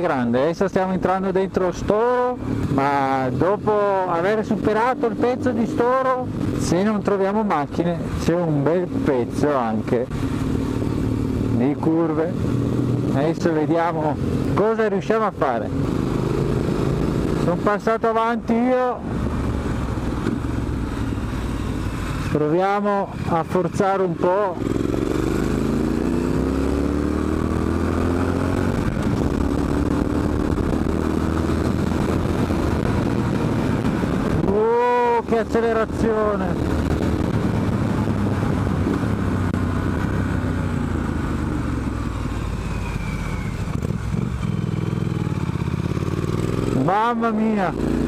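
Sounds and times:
motorcycle engine running: 0.0s - 48.0s.

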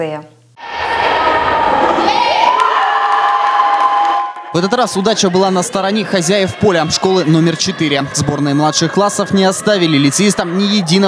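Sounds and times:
children shouting and cheering: 0.6s - 11.0s.

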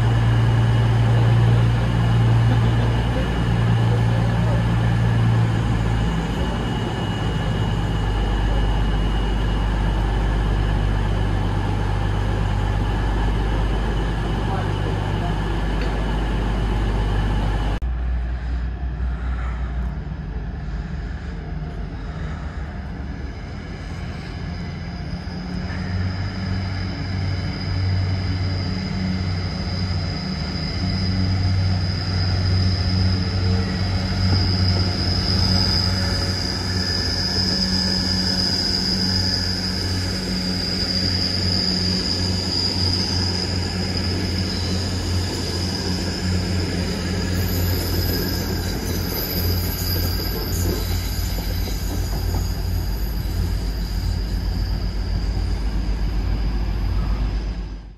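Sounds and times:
diesel train engine drone: 0.0s - 57.9s.

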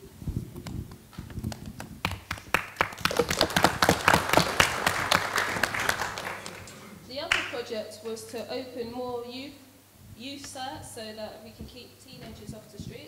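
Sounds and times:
audience applause: 1.5s - 7.6s.

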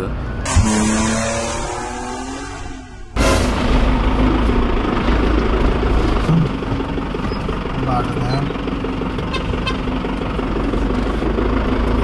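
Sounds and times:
vehicle engine droning: 0.0s - 12.0s.

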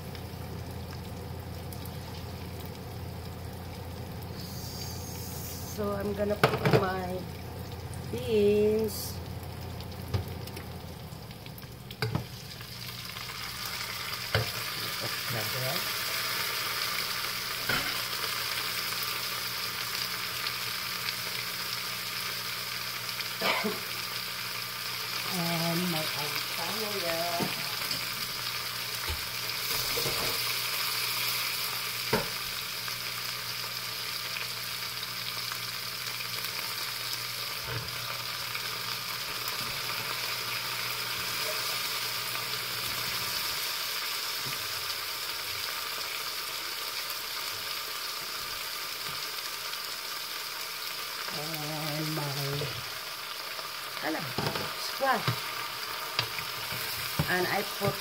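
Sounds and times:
vegetables sizzling in a pot: 0.0s - 58.0s.

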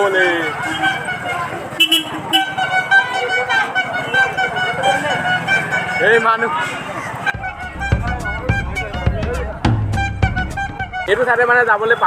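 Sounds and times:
crowd chatter: 0.0s - 12.0s
street bustle: 0.0s - 12.0s
horn sounding held notes: 7.2s - 11.2s.

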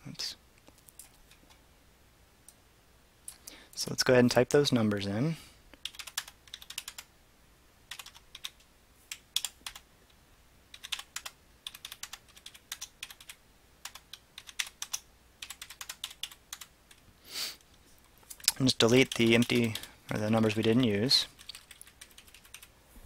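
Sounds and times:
computer keyboard typing: 5.8s - 7.1s, 7.9s - 9.8s, 10.7s - 17.0s, 18.0s - 22.7s.

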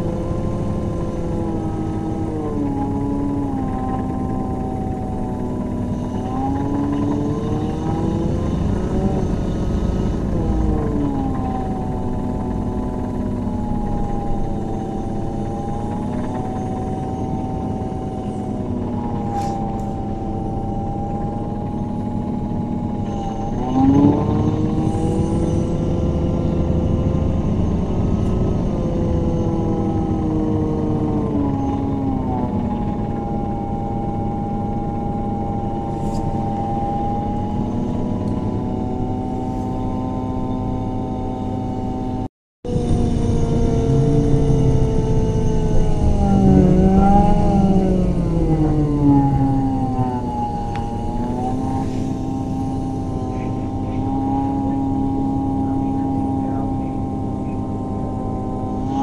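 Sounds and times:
bus engine whine: 0.0s - 59.0s
low road rumble: 0.0s - 59.0s.

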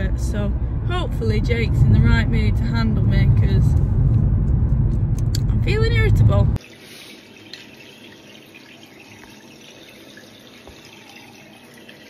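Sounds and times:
water running: 6.6s - 12.0s.

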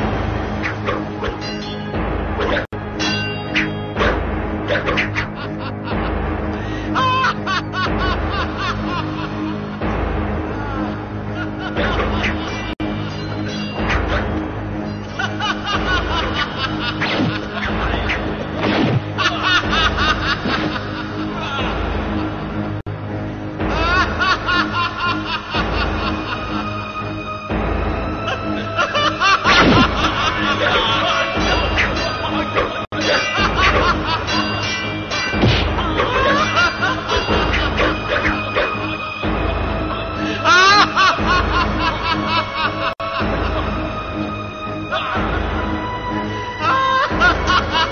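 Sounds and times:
background music: 0.0s - 47.9s
person laughing: 4.7s - 9.8s, 10.5s - 13.4s, 15.0s - 18.3s, 19.2s - 22.3s, 23.7s - 26.7s, 28.2s - 39.0s, 39.8s - 44.0s, 44.9s - 45.6s, 46.6s - 47.9s.

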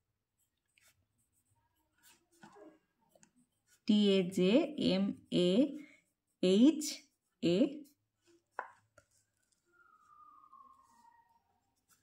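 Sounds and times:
woman speaking: 3.8s - 7.9s
pen tapping on paper: 8.5s - 9.1s.

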